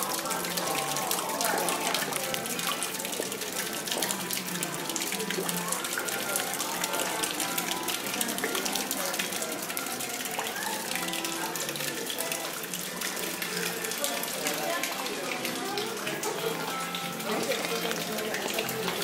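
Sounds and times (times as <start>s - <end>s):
fountain water splashing: 0.0s - 19.0s.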